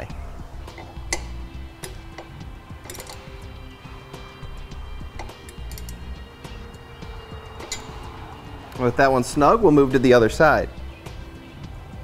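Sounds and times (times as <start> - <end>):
background music: 0.0 - 12.0
socket ratchet clicking: 0.7 - 3.5, 5.0 - 6.2, 7.6 - 8.8.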